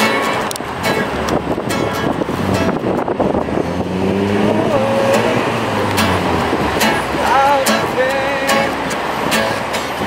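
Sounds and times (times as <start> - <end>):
cars passing: 0.0 - 10.0
steady engine hum: 0.1 - 10.0.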